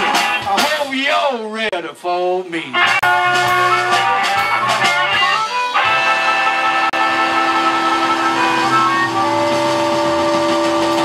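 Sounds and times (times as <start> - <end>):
harmonica held note: 3.0 - 11.0
band holding sustained chord: 5.9 - 11.0.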